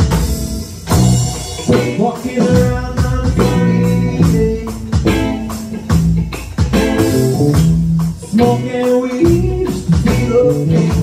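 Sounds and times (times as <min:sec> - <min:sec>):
bass guitar notes: 0:00.0 - 0:11.0
electric drum kit beat: 0:00.0 - 0:11.0
electric guitars: 0:00.0 - 0:11.0.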